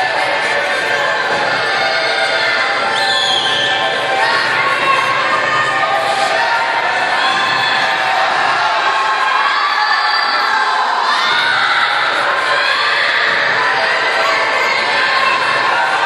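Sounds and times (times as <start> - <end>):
crowd cheering and shouting: 0.0 - 16.0.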